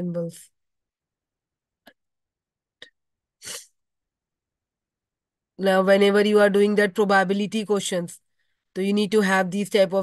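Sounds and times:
person sniffing: 3.4 - 3.8.

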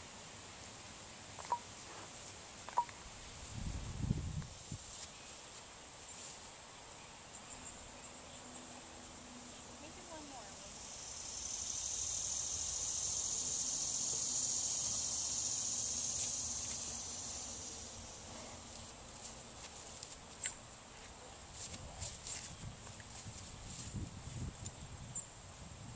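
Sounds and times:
insects buzzing: 0.0 - 25.9.

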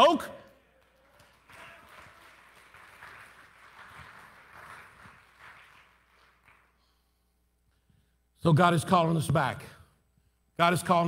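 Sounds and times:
faint scattered applause: 0.7 - 6.9.

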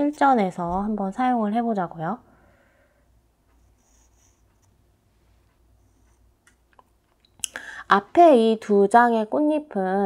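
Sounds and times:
pencil scratching on paper: 3.5 - 4.8.

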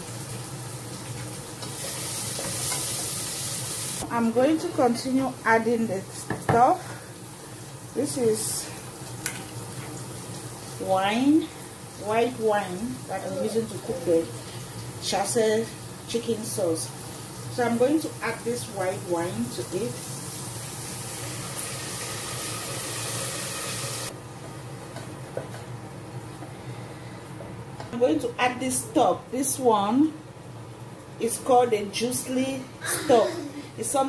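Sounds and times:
wine hissing in a hot pot: 0.0 - 4.0, 19.6 - 24.1
vegetables sizzling in oil: 0.0 - 25.7.

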